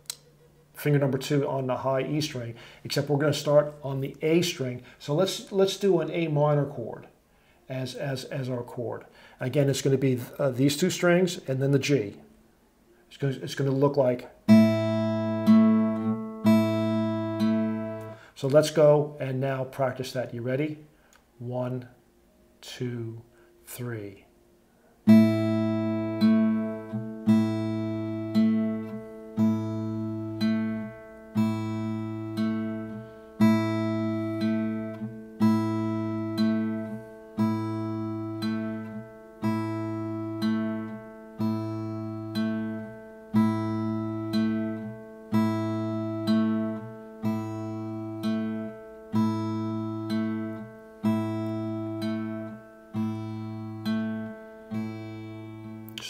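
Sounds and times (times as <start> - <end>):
acoustic guitar fingerpicking: 14.4 - 18.3, 25.1 - 56.0.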